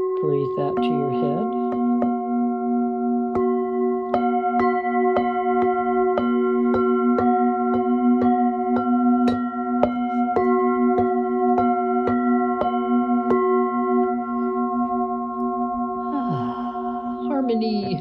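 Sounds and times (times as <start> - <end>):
singing bowls struck with mallet: 0.0 - 17.8.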